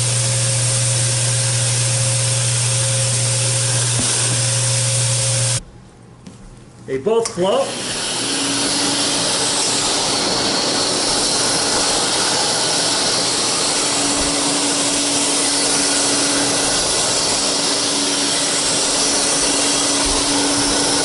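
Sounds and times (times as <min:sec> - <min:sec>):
canister vacuum running: 0:00.0 - 0:05.6, 0:07.2 - 0:21.0.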